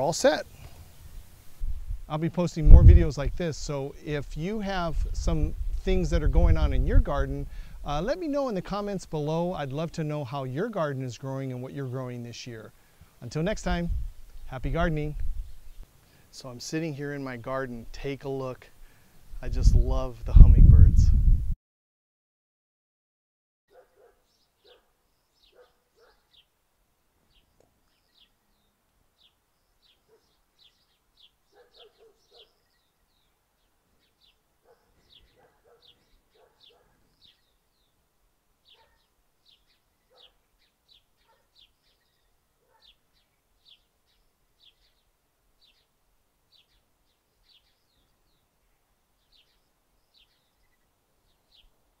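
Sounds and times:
faint bird chirping: 0:23.7 - 0:26.6, 0:27.2 - 0:52.0.

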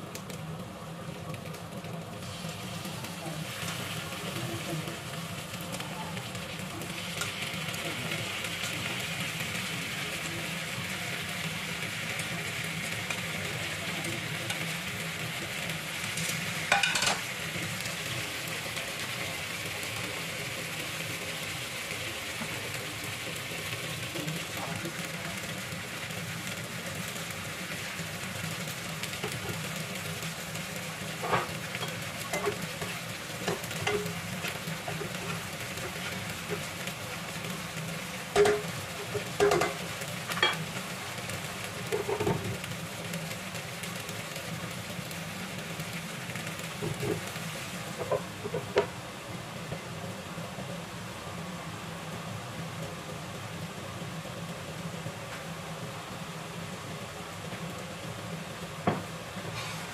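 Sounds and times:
fish frying in a pan: 0:00.0 - 0:59.9.

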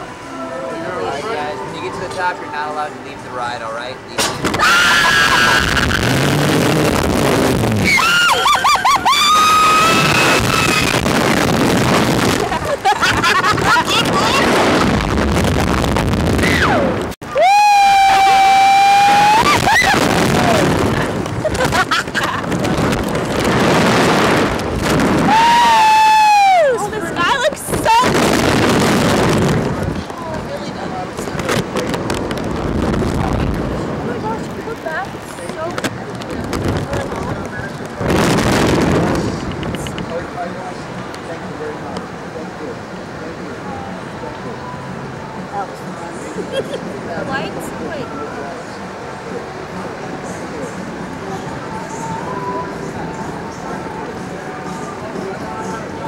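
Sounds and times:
wind rushing across microphone: 0:04.4 - 0:46.0
riders screaming: 0:04.5 - 0:06.2, 0:07.8 - 0:11.1, 0:16.4 - 0:20.8, 0:25.2 - 0:26.9.

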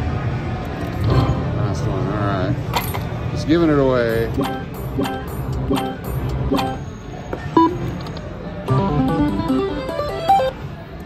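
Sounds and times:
slot machine chime notes: 0:01.1 - 0:01.6, 0:04.1 - 0:07.0, 0:08.7 - 0:10.6
stepping beeps: 0:04.3 - 0:08.0.

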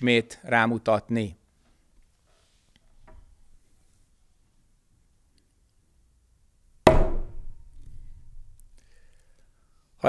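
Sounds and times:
wooden staff sharp knock: 0:06.9 - 0:07.7.

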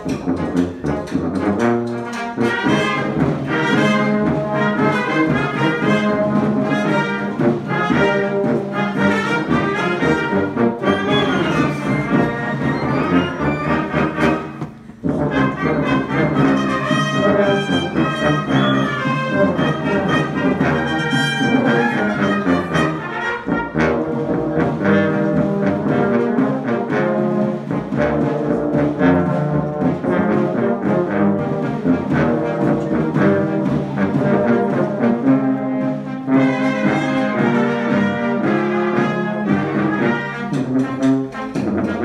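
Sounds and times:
brass band playing: 0:00.0 - 0:42.0.

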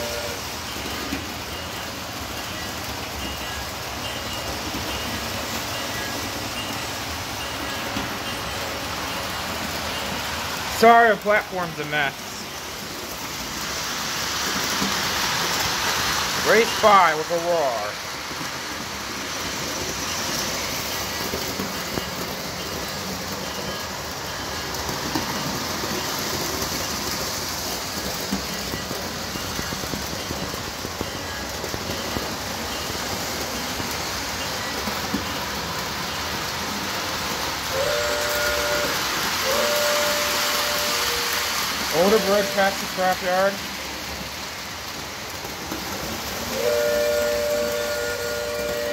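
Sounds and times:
train horn blasts: 0:00.0 - 0:00.5, 0:37.7 - 0:42.7, 0:46.5 - 0:48.9
model trains rumbling on track: 0:00.0 - 0:48.9.

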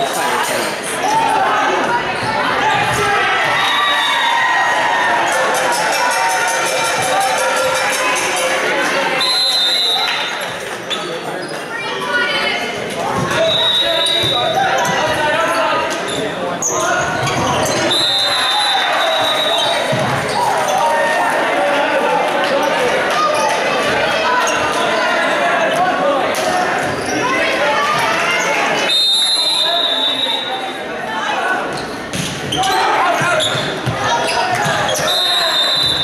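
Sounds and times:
crowd chatter: 0:00.0 - 0:36.0
players shouting: 0:00.1 - 0:10.5, 0:11.8 - 0:36.0
referee whistle blasts: 0:09.2 - 0:10.3, 0:13.4 - 0:14.4, 0:17.8 - 0:19.7, 0:28.9 - 0:30.6, 0:35.0 - 0:36.0.

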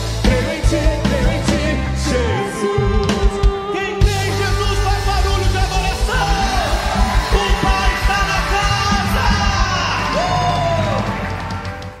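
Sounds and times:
worship band playing: 0:00.0 - 0:12.0
person singing: 0:00.1 - 0:11.0
drum beat: 0:02.9 - 0:12.0.

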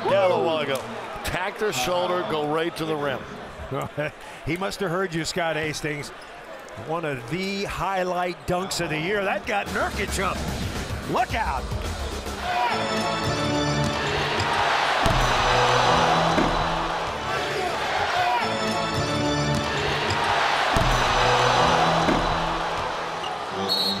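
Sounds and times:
arena crowd cheering: 0:00.0 - 0:10.0, 0:12.2 - 0:24.0
arena music: 0:09.6 - 0:24.0.

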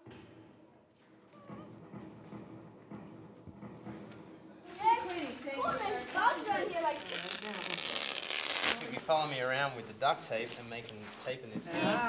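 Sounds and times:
duct tape ripping off roll: 0:05.6 - 0:09.6.

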